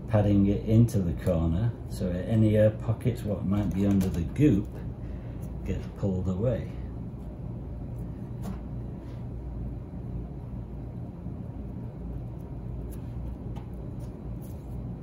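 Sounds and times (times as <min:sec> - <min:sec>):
workshop low rumble: 0:00.0 - 0:15.0
brush tapping: 0:12.4 - 0:14.8.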